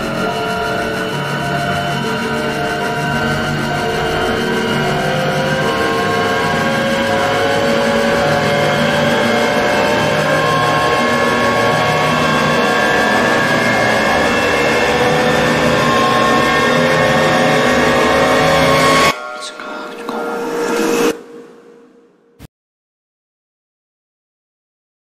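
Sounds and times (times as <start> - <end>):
cinematic riser tones climbing in pitch: 0.0 - 19.3.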